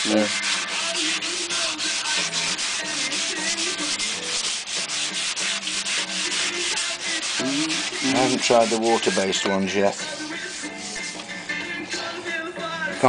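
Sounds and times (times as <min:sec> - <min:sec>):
sandpaper rubbing on wood: 0:00.0 - 0:11.2.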